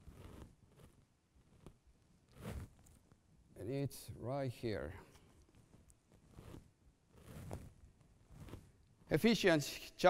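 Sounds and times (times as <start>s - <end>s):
faint soft rustles: 0.0s - 3.3s, 4.6s - 9.2s.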